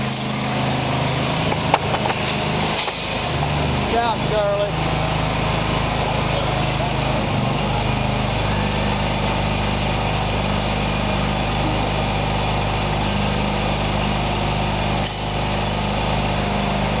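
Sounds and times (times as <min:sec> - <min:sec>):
gas engine running: 0:00.0 - 0:17.0.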